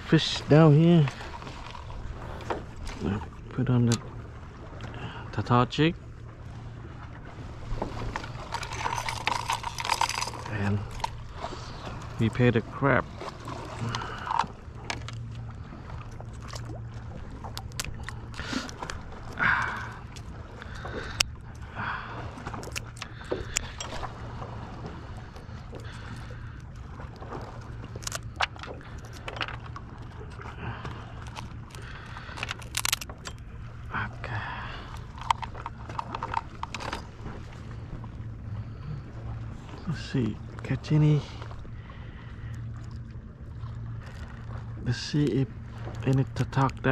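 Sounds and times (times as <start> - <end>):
low steady hum: 0.0 - 46.9.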